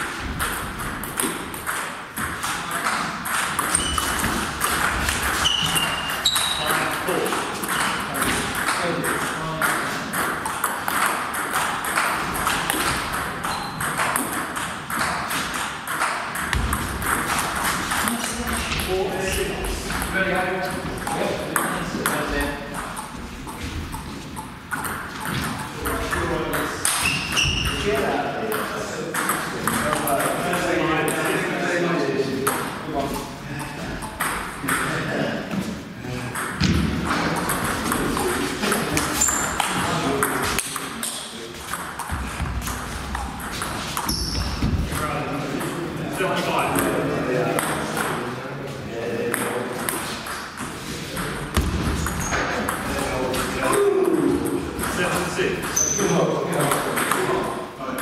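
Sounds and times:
people talking in a hall: 0:00.0 - 0:58.0
table tennis ball clicking: 0:07.6 - 0:18.4.

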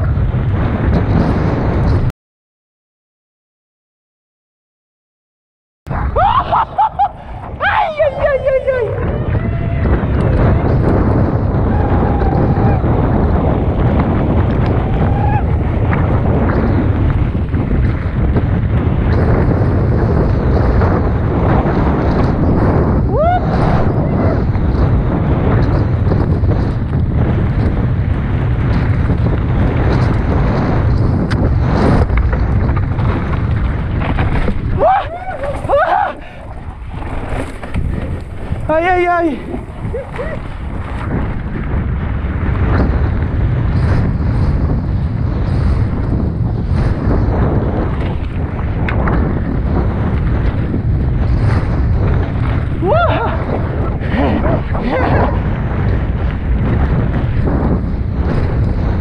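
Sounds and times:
wind rumble on microphone: 0:00.0 - 0:02.1, 0:05.9 - 0:59.0
voices: 0:06.3 - 0:10.0.

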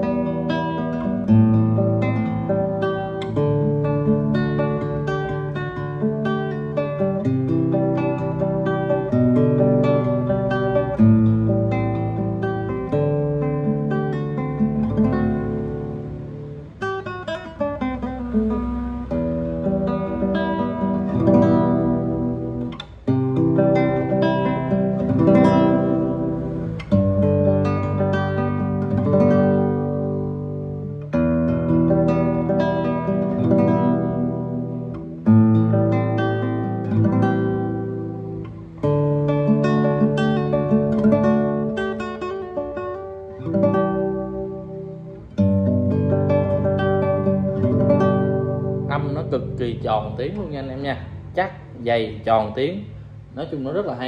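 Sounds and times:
nylon-string guitar fingerpicked: 0:00.0 - 0:54.0.

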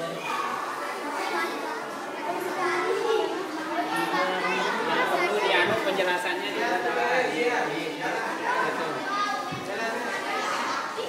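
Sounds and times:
children's voices: 0:00.0 - 0:11.0
overlapping voices chattering: 0:00.0 - 0:11.0.

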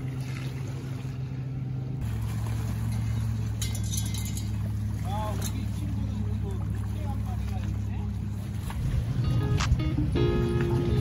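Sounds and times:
low engine-like hum: 0:00.0 - 0:11.0.

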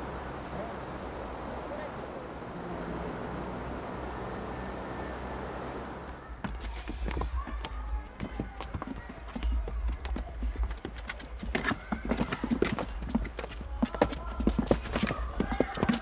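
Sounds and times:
hooves clip-clopping on cobblestones: 0:06.4 - 0:16.0.

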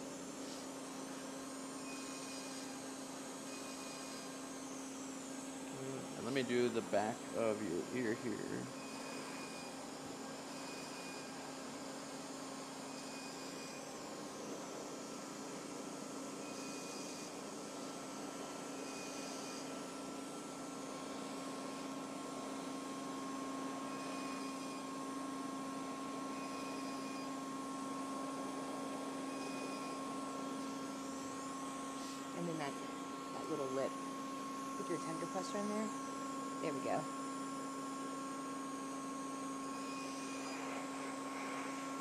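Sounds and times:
laser machine hum: 0:00.0 - 0:42.0.

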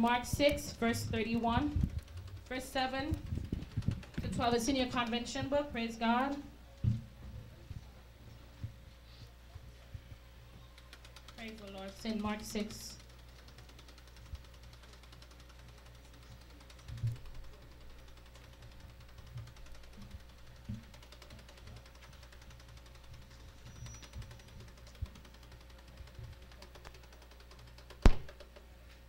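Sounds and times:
soft low thumps: 0:00.0 - 0:10.8.

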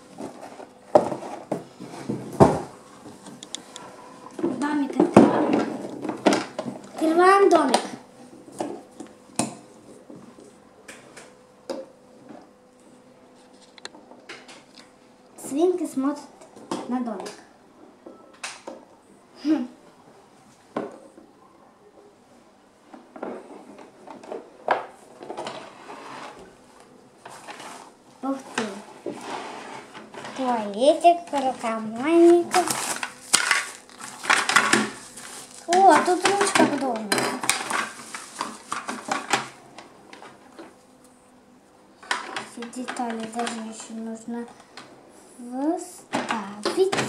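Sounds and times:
bubble wrap crackling: 0:31.4 - 0:39.2.

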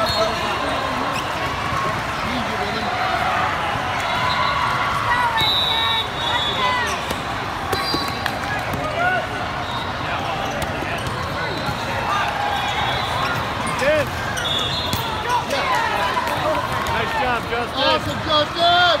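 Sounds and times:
sneakers squeaking on court: 0:00.0 - 0:01.8, 0:06.8 - 0:08.8, 0:10.4 - 0:12.0, 0:12.6 - 0:15.5
volleyballs smacking and bouncing: 0:06.9 - 0:09.0, 0:10.5 - 0:12.3.

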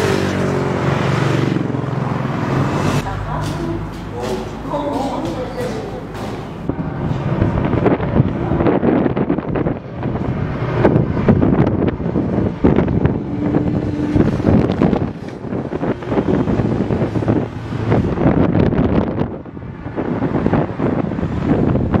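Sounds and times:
motorcycles passing: 0:00.0 - 0:22.0
wind gusting on microphone: 0:00.0 - 0:22.0.

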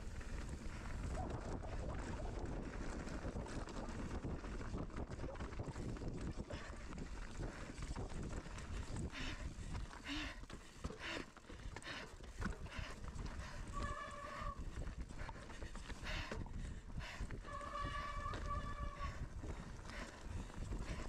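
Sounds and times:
wind on microphone: 0:00.0 - 0:09.8, 0:12.7 - 0:21.0
bike tyres rattling over stones: 0:00.0 - 0:21.0.

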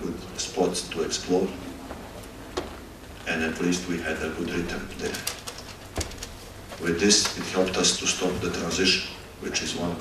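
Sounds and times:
man talking into a microphone: 0:03.3 - 0:05.3, 0:06.8 - 0:10.0.

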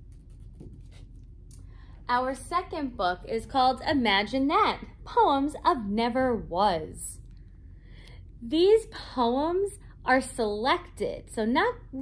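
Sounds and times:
book rustling and scraping: 0:00.0 - 0:01.4
low steady hum: 0:00.0 - 0:12.0.

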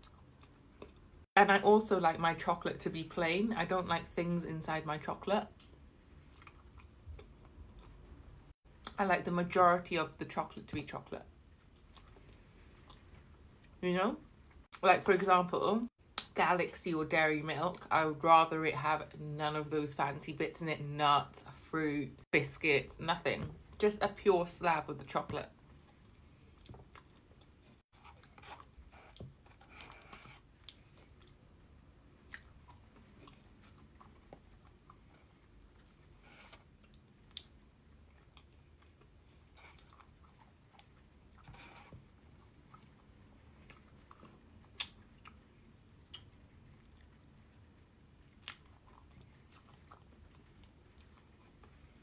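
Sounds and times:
chewing and mouth sounds: 0:00.0 - 0:01.1, 0:05.6 - 0:08.2, 0:11.6 - 0:13.8, 0:25.6 - 0:52.0.

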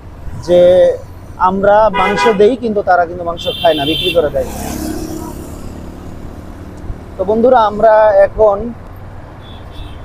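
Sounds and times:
traffic rumble of engines and tyres: 0:00.0 - 0:10.0.

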